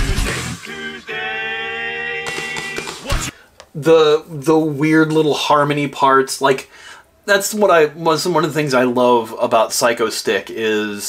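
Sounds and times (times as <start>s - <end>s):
sustained vocal harmony: 0.0s - 3.3s.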